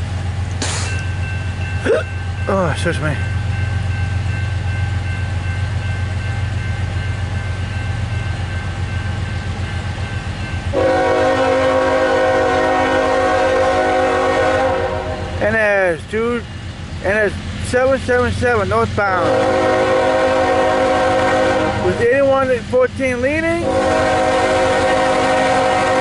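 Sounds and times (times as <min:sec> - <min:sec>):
freight train rumble: 0:00.0 - 0:26.0
locomotive air horn blast: 0:10.7 - 0:15.4, 0:19.2 - 0:22.0, 0:23.6 - 0:26.0.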